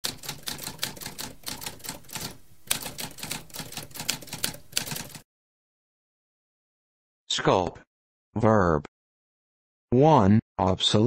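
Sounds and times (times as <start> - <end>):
typewriter keys clacking: 0.0 - 5.2.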